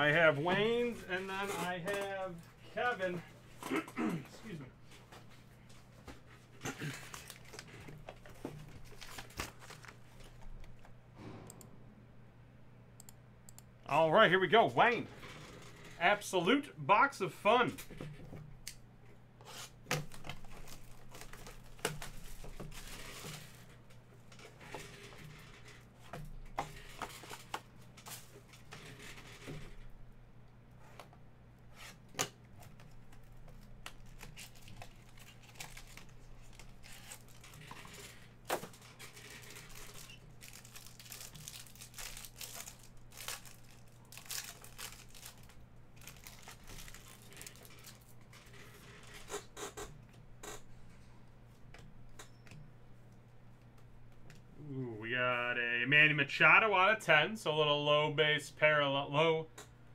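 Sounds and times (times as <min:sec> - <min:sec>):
plastic wrapping tearing and crinkling: 0:06.6 - 0:10.4, 0:20.0 - 0:23.7, 0:32.7 - 0:49.3.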